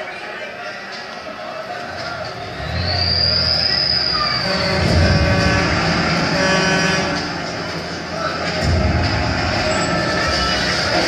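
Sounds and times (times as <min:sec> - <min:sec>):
soundtrack music from screen: 0:01.8 - 0:11.0
deep rumble: 0:02.0 - 0:11.0.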